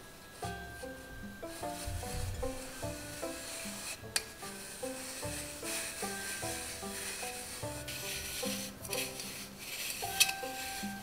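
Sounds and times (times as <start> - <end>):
background music: 0.0 - 11.0
flour rubbed through metal sieve: 0.4 - 11.0.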